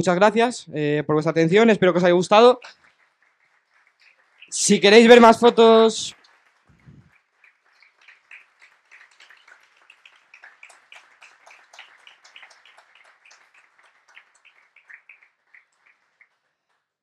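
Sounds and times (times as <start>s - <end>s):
small audience applauding: 1.6s - 17.0s.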